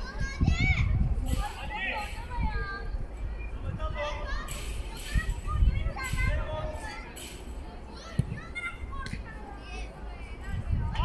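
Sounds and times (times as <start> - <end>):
children shouting and calling: 0.0 - 11.0.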